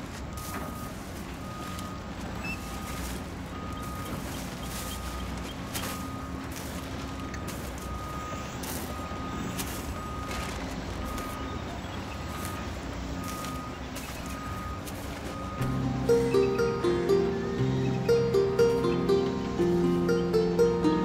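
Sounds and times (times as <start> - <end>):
low engine rumble: 0.0 - 21.0
reversing alarm beeps: 0.3 - 19.3
music: 15.6 - 21.0.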